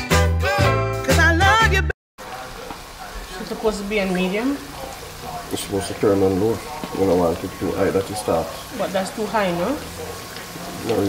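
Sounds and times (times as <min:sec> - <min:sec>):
music with a beat: 0:00.0 - 0:01.9
oil sizzling in a pan: 0:02.2 - 0:11.0.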